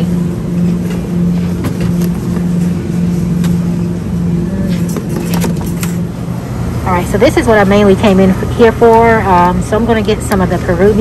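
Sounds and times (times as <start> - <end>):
refrigeration and ventilation hum: 0.0 - 11.0.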